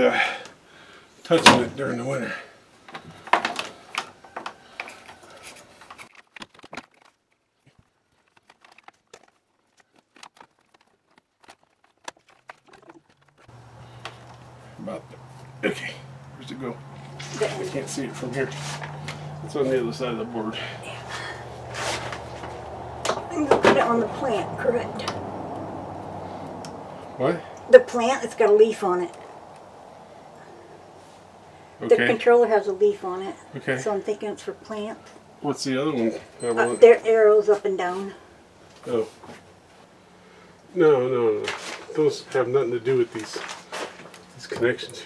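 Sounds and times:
low background noise: 0.0 - 45.0
cords and plastic controller handled: 2.9 - 13.4.

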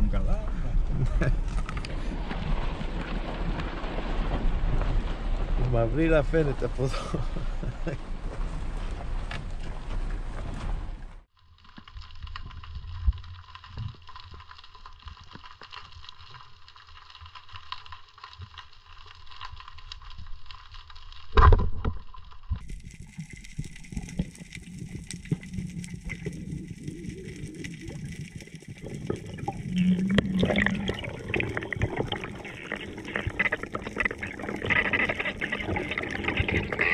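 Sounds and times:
underwater clicks and crackles: 0.0 - 36.9.

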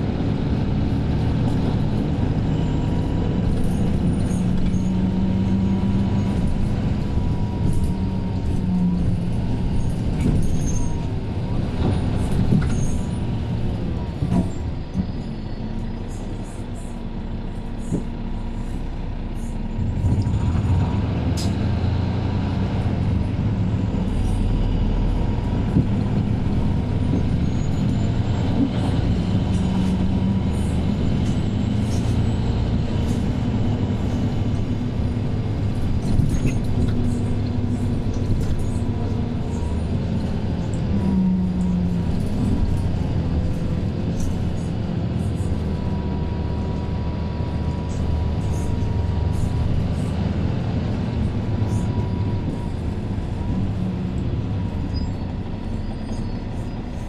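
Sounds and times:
bus diesel engine drone: 0.0 - 57.0.

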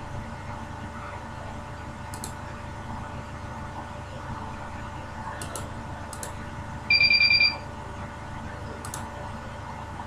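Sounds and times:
high electronic beep pulsing: 6.9 - 7.6.

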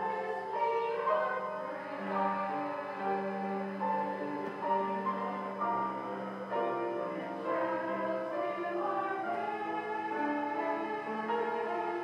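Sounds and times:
church organ chords: 0.0 - 12.0.

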